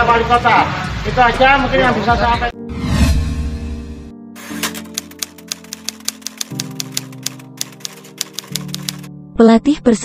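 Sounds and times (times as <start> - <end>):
typewriter key clicks: 4.5 - 9.1.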